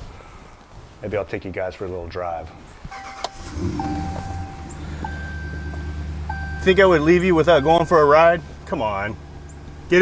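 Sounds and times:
door warning chime: 0:03.0 - 0:09.7
low steady rumble: 0:03.3 - 0:10.0.

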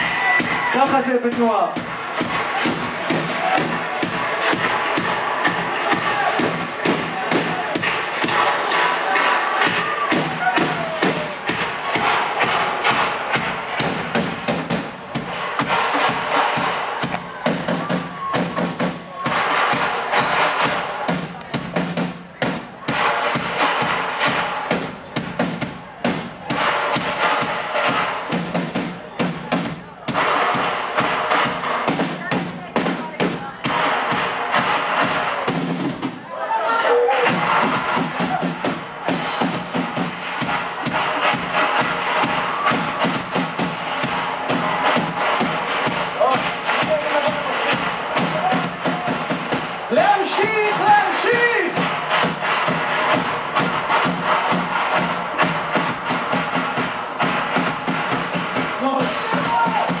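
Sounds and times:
crowd shouting and singing: 0:00.0 - 1:00.0
live band drum rhythm: 0:00.0 - 1:00.0.

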